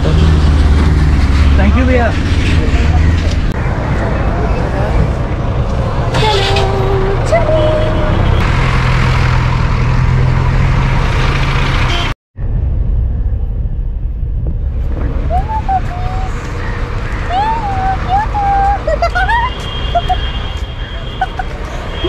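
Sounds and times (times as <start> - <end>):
street traffic engines humming: 0.0 - 12.2, 13.1 - 22.0.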